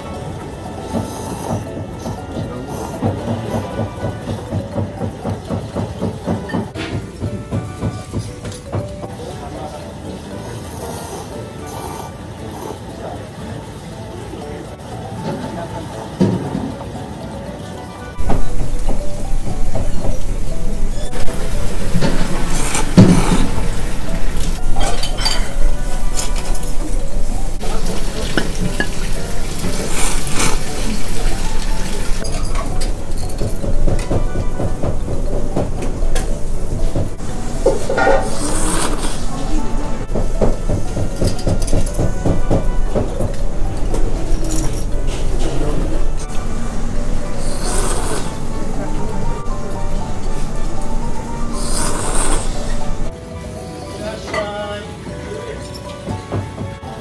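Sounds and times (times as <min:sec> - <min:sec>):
person slurping noodles: 0:22.0 - 0:24.5, 0:29.6 - 0:31.5, 0:37.8 - 0:39.7, 0:47.4 - 0:48.5, 0:51.5 - 0:53.1.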